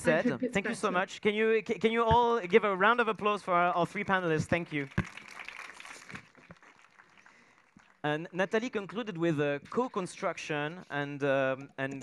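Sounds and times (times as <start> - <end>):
faint audience applause: 4.6 - 8.0.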